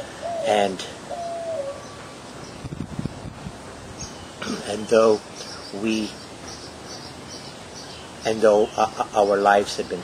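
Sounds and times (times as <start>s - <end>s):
dove cooing: 0.0s - 2.0s.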